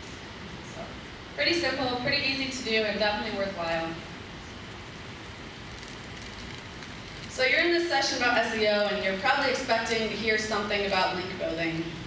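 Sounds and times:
steady room hiss: 0.0 - 12.0.

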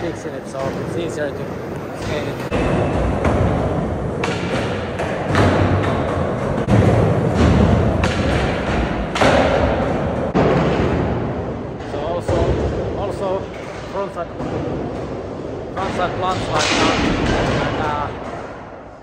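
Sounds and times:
skateboard clacks and thuds: 0.6 - 11.1.

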